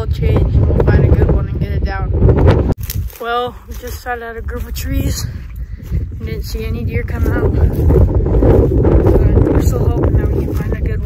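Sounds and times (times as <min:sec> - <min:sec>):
person talking: 0:00.0 - 0:02.2, 0:03.1 - 0:08.0, 0:08.9 - 0:11.0
wind buffeting microphone: 0:00.0 - 0:11.0.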